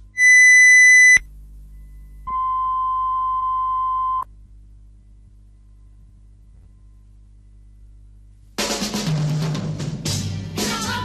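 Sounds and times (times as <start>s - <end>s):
lower soft test tone: 0.0s - 8.4s
faint low mains hum: 0.0s - 8.6s
high test tone beep: 0.2s - 1.2s.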